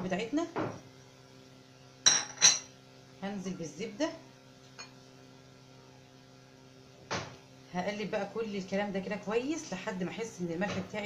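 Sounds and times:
spoon clinking on dishes: 0:02.1 - 0:02.7.

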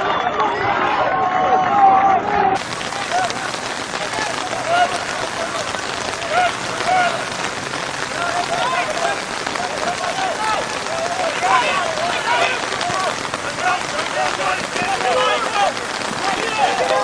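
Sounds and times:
steady rain falling: 0:02.1 - 0:17.0
voice calls: 0:02.6 - 0:17.0.

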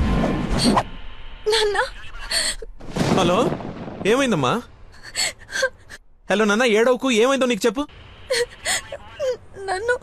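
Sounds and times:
woman sobbing: 0:01.5 - 0:02.8, 0:05.0 - 0:06.0, 0:08.3 - 0:10.0.

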